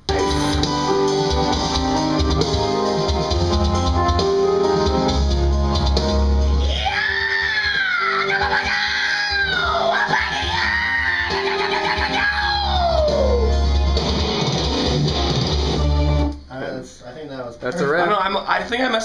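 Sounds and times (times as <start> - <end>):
loud instrumental backing track: 0.0 - 16.5
man screaming metal vocals: 6.6 - 13.5.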